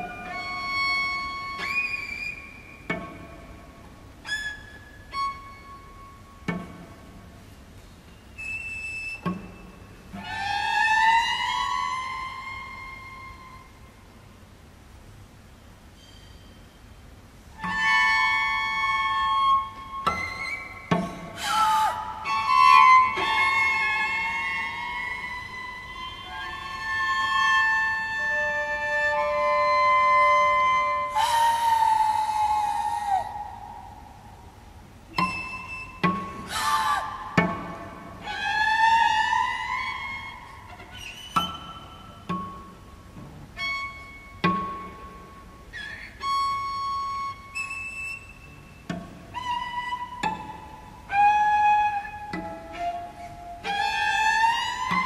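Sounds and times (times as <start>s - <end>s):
cellos playing: 0.0s - 1.8s, 17.6s - 32.0s, 46.2s - 55.0s.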